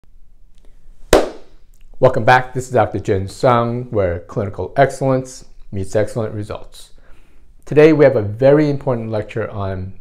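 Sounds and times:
sharp hand clap: 1.1s - 1.6s.

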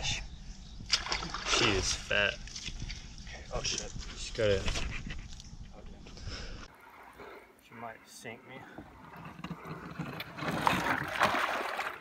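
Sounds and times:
fish splashing in water: 10.3s - 12.0s.

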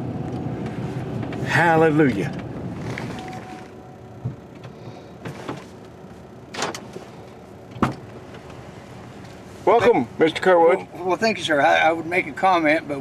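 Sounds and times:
vehicle cab rumble: 0.0s - 13.0s.

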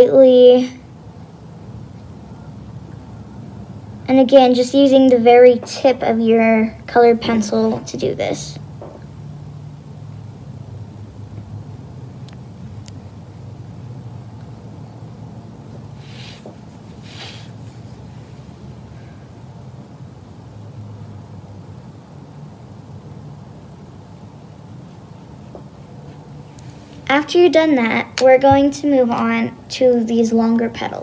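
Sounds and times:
low background hum: 0.0s - 31.0s
pencil scratching on paper: 24.8s - 26.8s.

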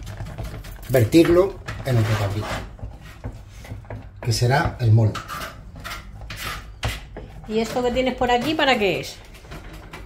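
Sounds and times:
spoon scraping a saucepan: 1.1s - 9.7s.

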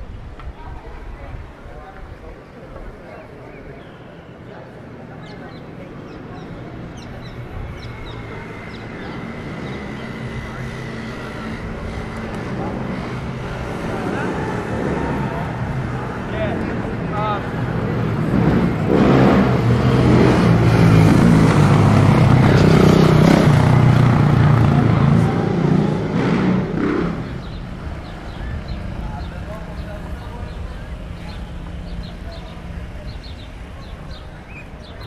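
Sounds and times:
people's voices: 0.0s - 35.0s
vehicle engine passing: 5.8s - 35.0s.

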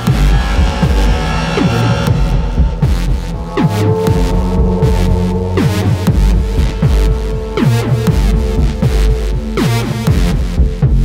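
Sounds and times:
falling pitch sweeps: 0.0s - 10.0s
held synth note: 0.0s - 10.0s
low bass drone: 0.0s - 11.0s.

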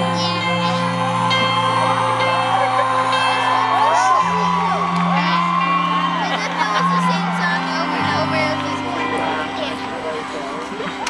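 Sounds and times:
keyboard chords: 0.0s - 11.0s
audience whooping and screaming: 0.5s - 11.0s.

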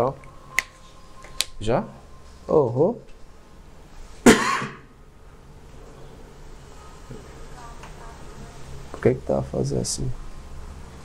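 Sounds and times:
person coughing: 4.2s - 4.9s.

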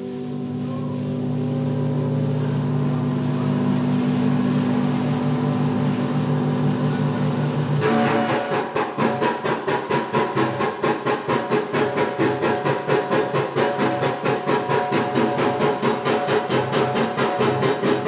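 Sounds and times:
cymbals: 0.0s - 18.0s
drum kit: 4.2s - 18.0s.

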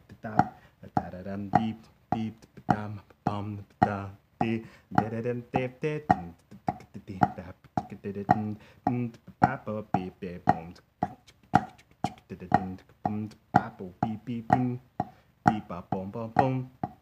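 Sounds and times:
person vocalising rhythm syllables: 0.0s - 17.0s
drumsticks on rubber practice pad: 0.3s - 2.9s, 3.8s - 15.8s, 16.4s - 17.0s.

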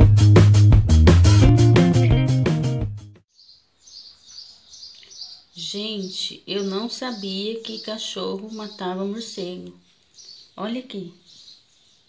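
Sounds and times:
guitar music: 0.0s - 3.2s
high bird chirps: 3.3s - 12.0s.

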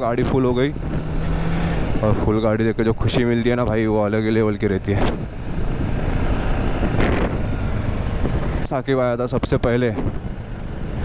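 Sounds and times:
wind noise on microphone: 4.9s - 8.6s.

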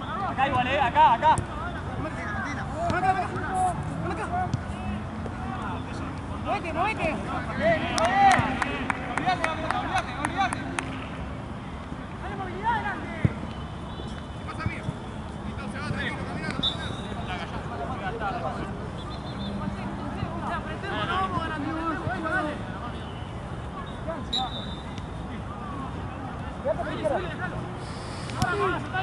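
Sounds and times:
steady background noise: 0.0s - 29.0s
players shouting: 0.1s - 10.7s, 28.3s - 29.0s.

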